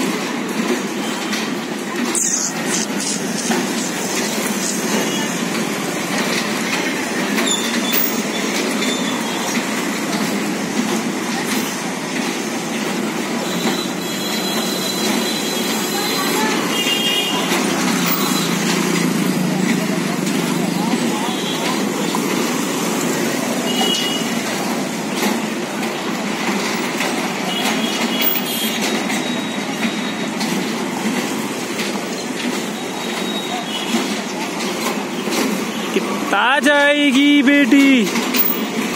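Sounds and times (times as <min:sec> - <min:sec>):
carousel platform rumble: 0:00.0 - 0:38.9
murmur of voices: 0:15.1 - 0:23.7.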